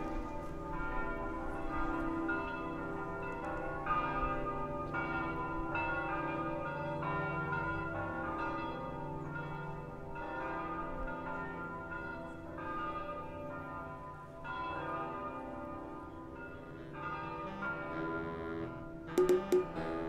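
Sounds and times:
church bells ringing: 0.0 - 20.0.

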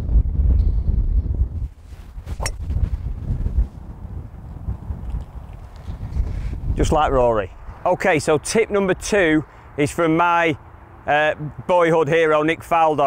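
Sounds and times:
wind rumbling on microphone: 0.0 - 9.4
golf club striking ball: 2.3 - 2.7.

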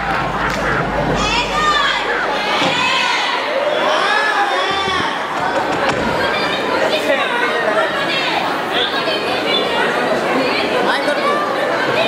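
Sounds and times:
hubbub of chatter: 0.0 - 12.0.

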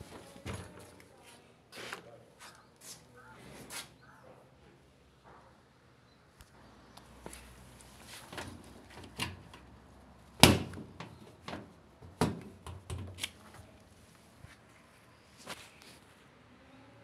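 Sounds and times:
knocks and clicks of handling hose: 10.4 - 13.4.

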